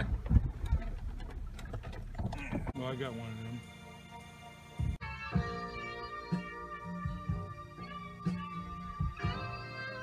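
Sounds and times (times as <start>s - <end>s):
background music: 2.8s - 10.0s.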